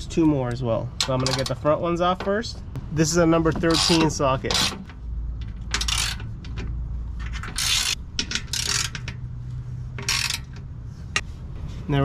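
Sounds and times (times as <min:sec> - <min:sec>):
hand ratchet clicking: 0:05.7 - 0:06.5, 0:07.3 - 0:09.2, 0:10.0 - 0:10.7.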